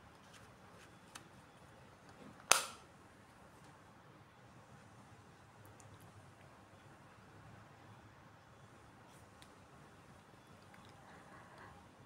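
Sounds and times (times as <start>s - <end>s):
plastic case click: 2.5s - 2.8s.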